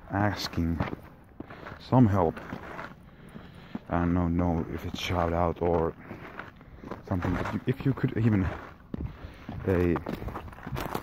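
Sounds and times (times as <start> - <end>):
footsteps crunching on snow: 0.0 - 11.0.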